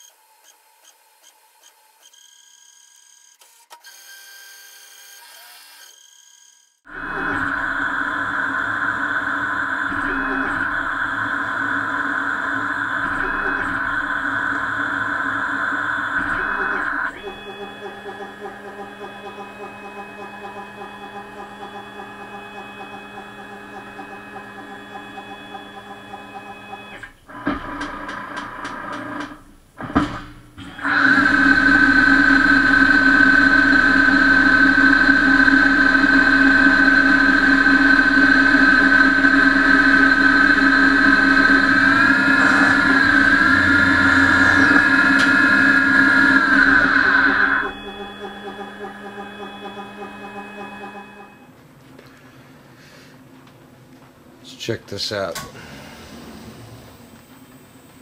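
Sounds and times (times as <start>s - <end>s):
lathe spindle whine: 6.9s - 51.5s
machine hum: 6.9s - 58.0s.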